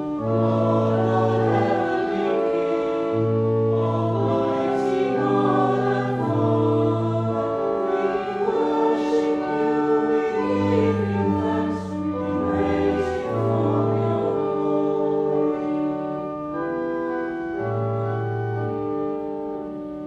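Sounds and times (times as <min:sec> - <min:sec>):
choir singing church music: 0:00.0 - 0:20.0
low sustained bass notes: 0:09.6 - 0:15.7.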